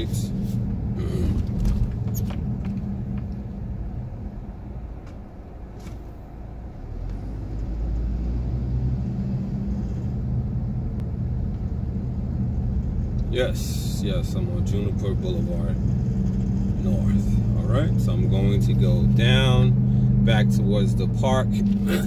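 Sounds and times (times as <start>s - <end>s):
car engine and road noise: 0.0s - 22.0s.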